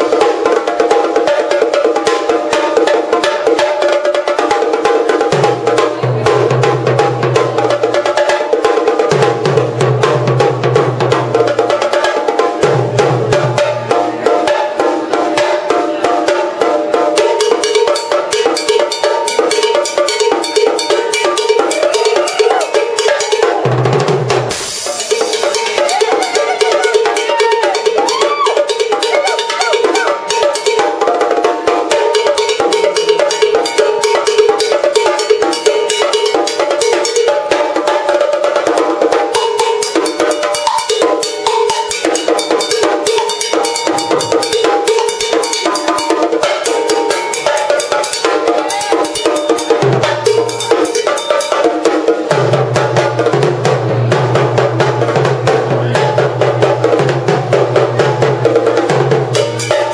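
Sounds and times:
drum kit solo: 0.0s - 59.9s.

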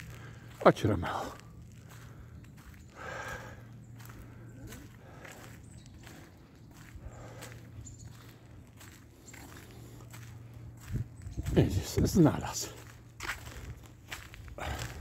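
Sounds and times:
footsteps on paved path: 0.0s - 15.0s.

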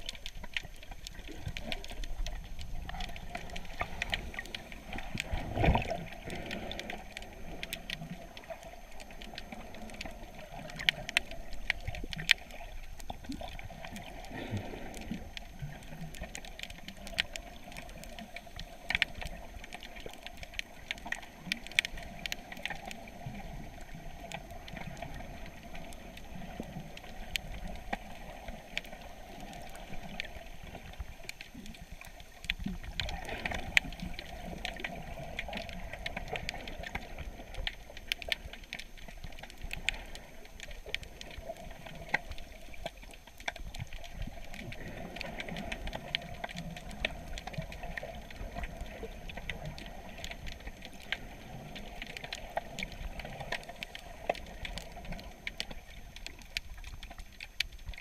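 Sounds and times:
underwater clicks and crackles: 0.0s - 58.0s
underwater water wash: 0.0s - 58.0s.

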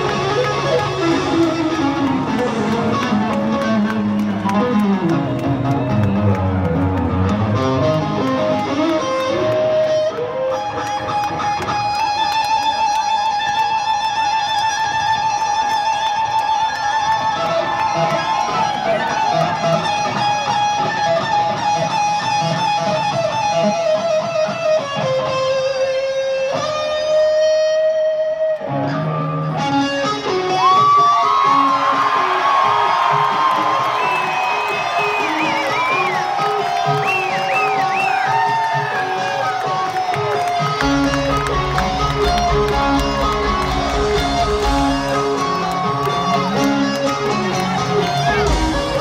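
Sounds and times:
electric guitar solo: 0.0s - 49.0s.

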